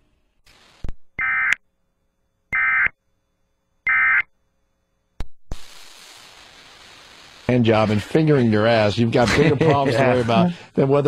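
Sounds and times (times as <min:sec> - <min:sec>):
steady hiss: 0:00.3 - 0:01.0, 0:05.5 - 0:11.0
buzzy digital data bursts: 0:05.5 - 0:10.3.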